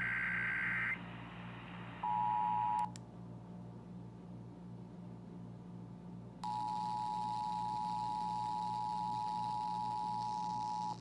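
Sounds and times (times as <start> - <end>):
radio hum and hiss: 0.0 - 2.9.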